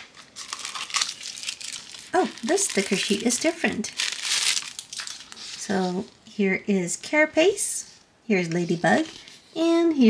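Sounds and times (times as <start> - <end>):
cellophane crinkling: 0.0 - 6.2.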